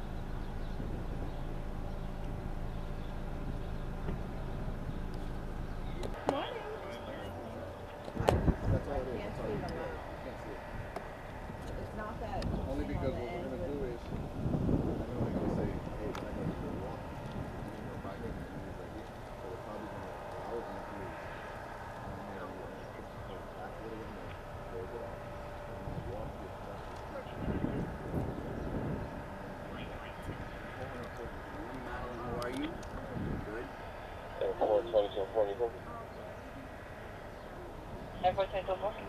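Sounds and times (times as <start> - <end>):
outdoor traffic noise: 0.0 - 39.0
police radio voices: 5.9 - 10.7, 14.9 - 36.8, 37.4 - 39.0.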